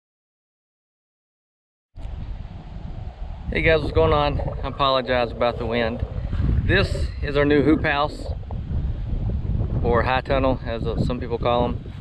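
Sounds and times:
wind buffeting microphone: 2.0 - 12.0.

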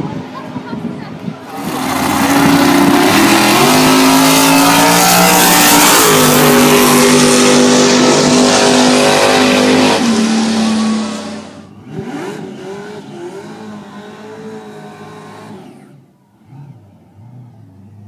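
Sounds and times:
drag racing car engine full throttle: 0.0 - 18.0.

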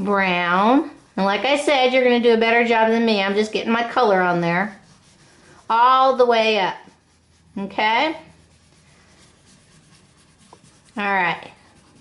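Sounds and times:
crayon scratching on paper: 0.0 - 12.0.

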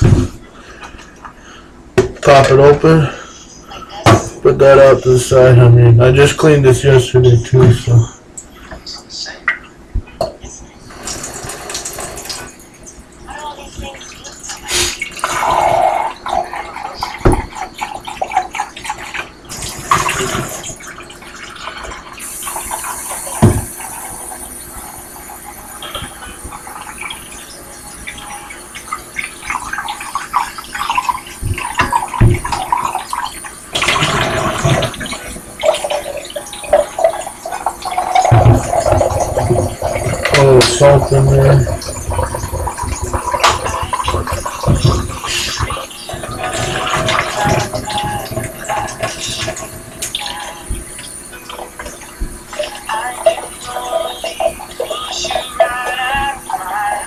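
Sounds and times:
jug knocking on sink: 2.0 - 2.6, 23.4 - 23.8, 29.5 - 51.0
tap running water into a jug: 10.9 - 12.6, 14.6 - 57.0.

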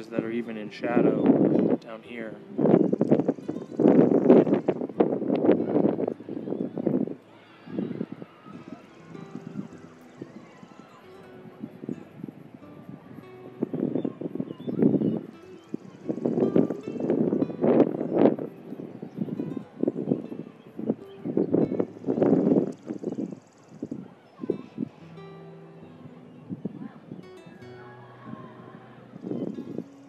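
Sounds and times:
faint background music: 0.0 - 30.0.

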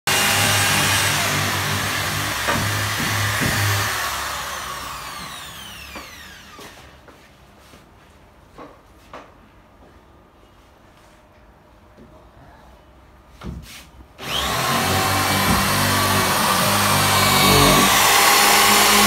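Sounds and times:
drill motor winding down: 0.1 - 6.7, 14.2 - 19.0
electric drill drilling into wood: 0.1 - 6.8, 14.2 - 19.0.

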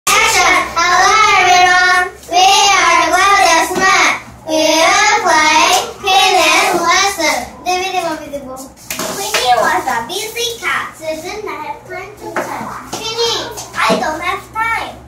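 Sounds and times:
girls singing together: 0.1 - 7.6.

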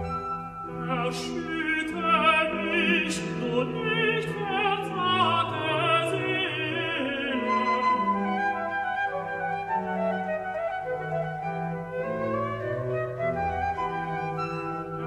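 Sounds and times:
flute melody: 0.0 - 4.9, 5.5 - 15.0
tenor singing: 0.6 - 9.0.

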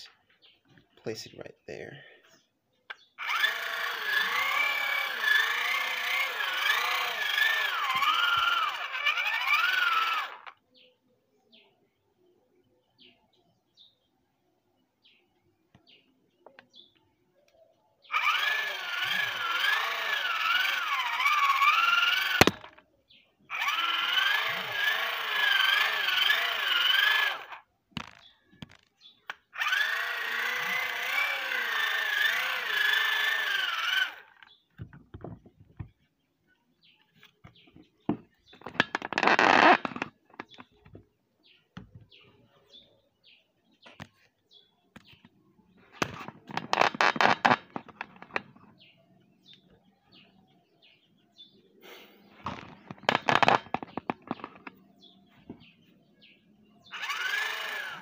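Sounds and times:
hand-cranked motor whining: 3.2 - 10.6, 18.1 - 22.8, 23.5 - 36.0, 37.2 - 41.0, 46.0 - 48.7, 52.5 - 54.8, 56.9 - 58.0.

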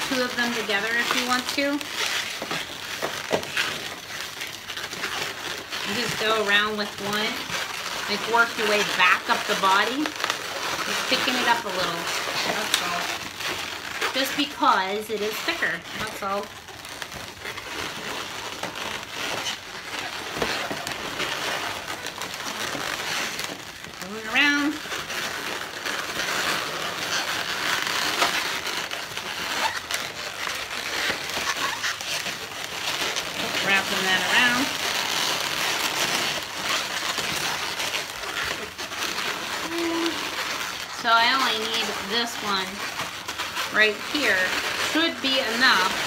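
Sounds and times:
balloons rubbing and creaking: 0.0 - 46.0
short rising balloon squeaks: 15.2 - 46.0.

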